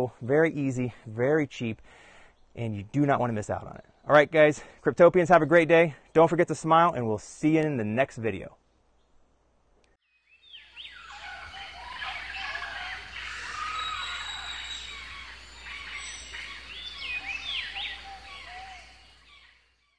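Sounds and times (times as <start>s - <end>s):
birds chirping and calling: 0.8s - 5.8s, 10.2s - 19.9s.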